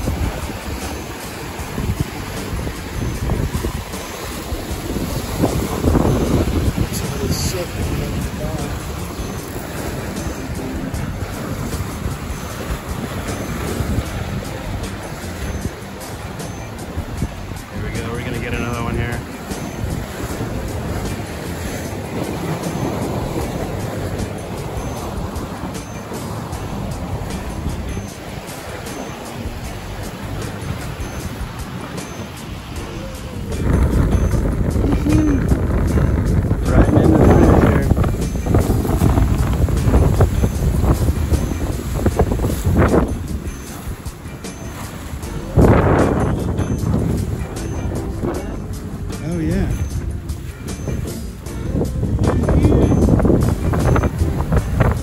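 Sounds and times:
water rushing along hull: 0.0s - 55.0s
wind buffeting microphone: 0.0s - 55.0s.

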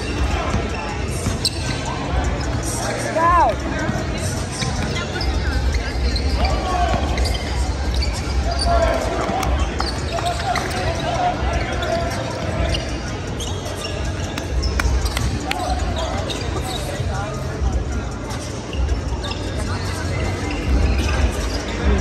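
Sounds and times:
people's voices: 0.0s - 22.0s.

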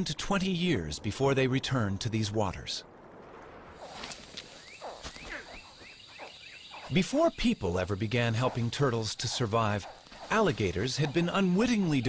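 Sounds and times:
steady hiss: 3.4s - 12.0s
birds calling: 3.8s - 12.0s.

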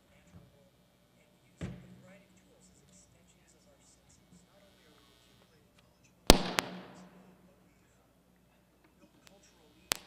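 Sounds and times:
sharp bangs: 6.3s - 7.4s.

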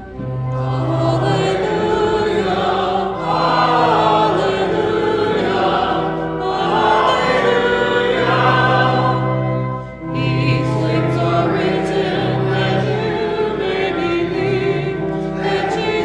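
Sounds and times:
congregation singing: 0.0s - 16.0s
organ holding low notes: 0.0s - 16.0s.

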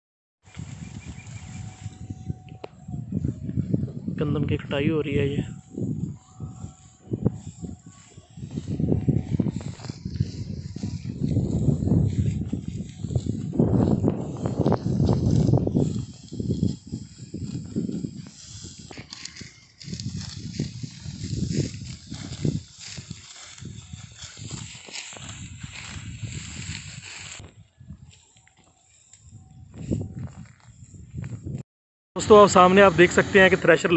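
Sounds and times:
wind rumbling on microphone: 0.4s - 31.6s
dry stalks rustling as cut: 5.8s - 31.0s.

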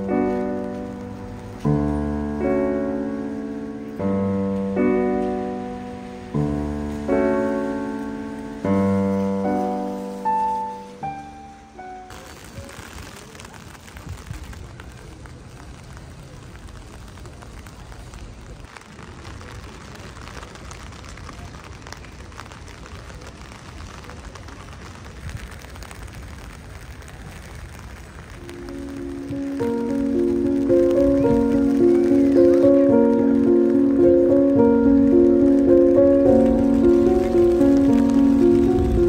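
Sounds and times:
piano music: 0.0s - 12.8s, 28.4s - 39.0s
low outdoor rumble: 0.0s - 39.0s
rain pattering: 0.0s - 39.0s.

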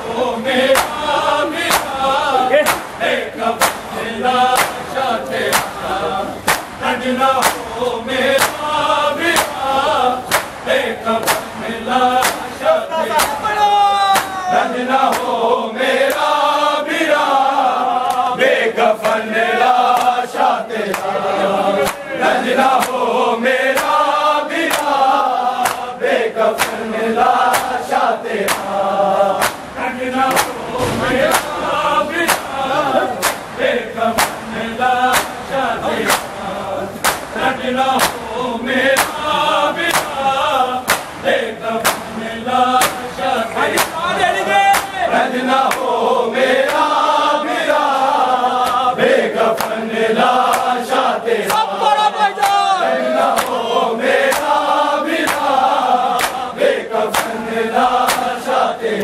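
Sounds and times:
men chanting together: 0.0s - 59.0s
hands beating chests: 0.7s - 2.0s, 2.6s - 3.9s, 4.5s - 5.8s, 6.4s - 6.8s, 7.4s - 7.7s, 8.3s - 9.6s, 10.2s - 15.4s, 26.6s - 26.8s, 27.4s - 28.7s, 29.4s - 33.6s, 34.2s - 34.5s, 35.1s - 35.4s, 36.0s - 36.4s, 37.0s - 38.2s, 38.9s - 40.2s, 40.8s - 42.2s, 42.8s - 45.9s, 51.4s - 53.6s.

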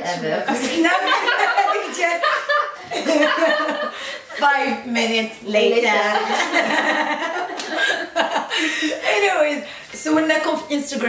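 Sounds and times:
women speaking: 0.0s - 3.2s, 4.3s - 7.0s, 8.9s - 11.0s
young women laughing: 0.5s - 4.6s, 6.2s - 9.2s.

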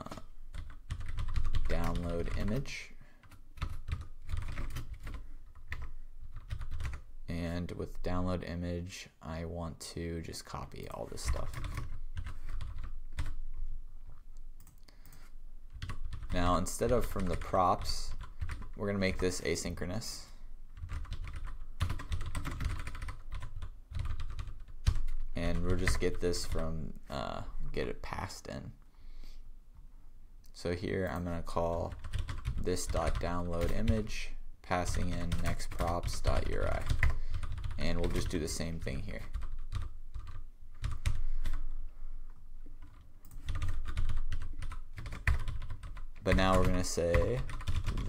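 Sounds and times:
typing on computer keyboard: 0.0s - 2.6s, 3.2s - 7.0s, 11.2s - 13.4s, 14.6s - 16.4s, 17.0s - 18.8s, 20.8s - 26.5s, 31.9s - 34.0s, 34.9s - 38.4s, 39.2s - 41.6s, 42.8s - 48.0s.

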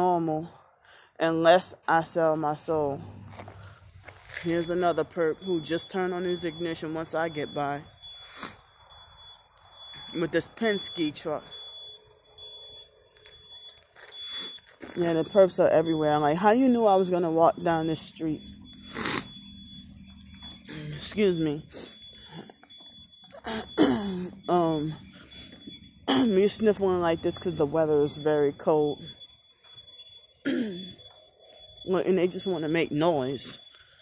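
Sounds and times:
woman clearing throat: 23.4s - 24.3s, 26.1s - 26.4s, 30.4s - 31.0s
woman coughing: 23.4s - 24.3s, 26.1s - 26.4s, 30.4s - 31.0s.

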